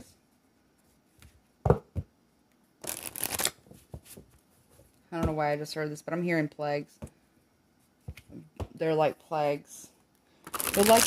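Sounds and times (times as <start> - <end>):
cards being shuffled: 2.8 - 4.3, 10.5 - 11.0.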